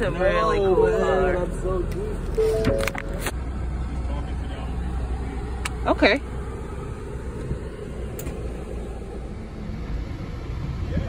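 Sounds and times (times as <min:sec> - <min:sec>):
vehicle rumble inside cabin: 0:00.0 - 0:11.0.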